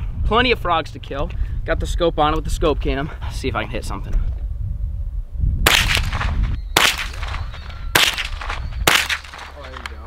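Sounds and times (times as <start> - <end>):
rifle shots with echo: 5.7 - 9.8.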